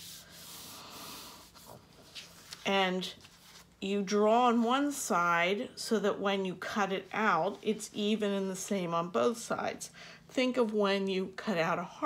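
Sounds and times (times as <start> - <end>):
hands rubbing paper: 0.0 - 3.8.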